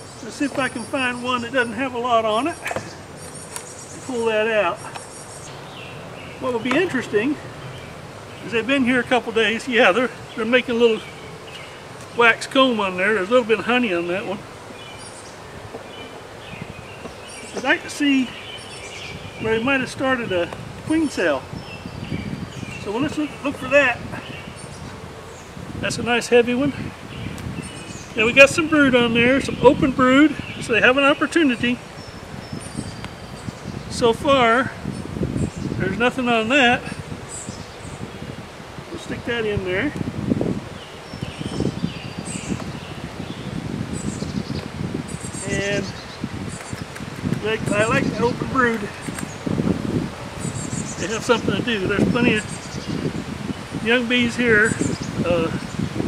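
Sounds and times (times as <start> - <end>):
bird chirps: 0.0 - 25.6, 27.0 - 34.1, 40.8 - 49.6, 50.3 - 55.8
bees buzzing: 0.0 - 34.0
steady low hiss: 0.0 - 56.0.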